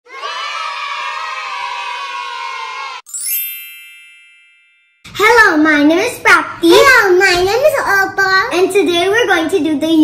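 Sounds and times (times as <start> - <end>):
children cheering: 0.1 - 3.1
bright chime with rising sweep: 3.1 - 5.2.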